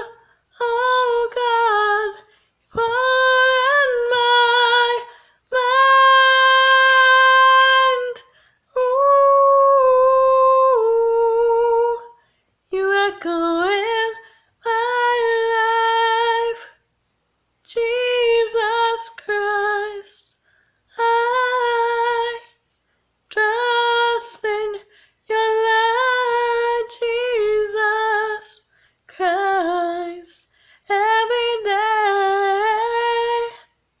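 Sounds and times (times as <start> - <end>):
woman singing unaccompanied: 0.0 - 16.8, 17.6 - 22.6, 23.3 - 33.8.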